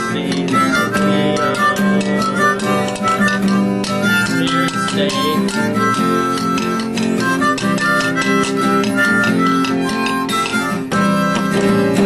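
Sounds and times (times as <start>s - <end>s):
harmonica playing: 0.0s - 12.0s
strummed acoustic guitar: 0.0s - 12.0s.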